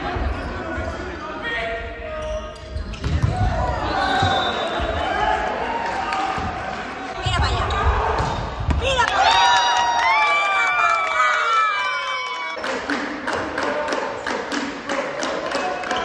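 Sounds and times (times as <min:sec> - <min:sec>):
players and spectators calling out: 0:03.2 - 0:13.0.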